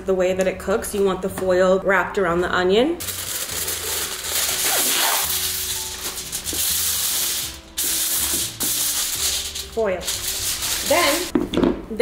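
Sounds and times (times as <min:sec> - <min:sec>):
aluminium foil crinkling: 0:03.0 - 0:11.3.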